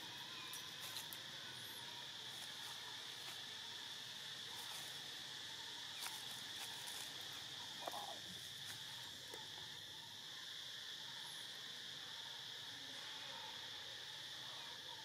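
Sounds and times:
high-pitched insect chorus: 0.0 - 15.0.

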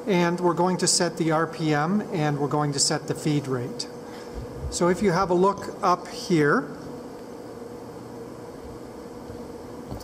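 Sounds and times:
machine shop hum: 0.0 - 10.0.

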